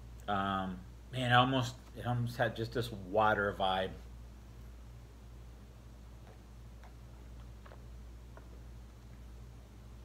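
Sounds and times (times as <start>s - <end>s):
low steady hum: 0.0s - 10.0s
person sipping and swallowing: 6.2s - 8.6s.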